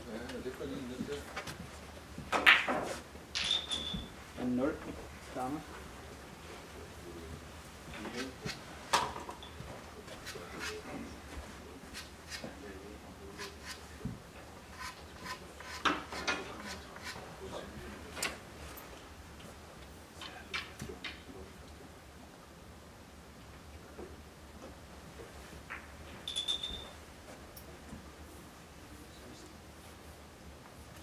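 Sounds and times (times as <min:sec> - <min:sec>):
small clicks and scrapes: 0:14.7 - 0:17.2.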